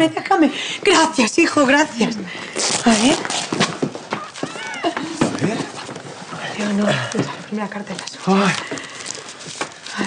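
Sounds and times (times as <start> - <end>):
quick footsteps on hard floor: 3.4 - 6.2.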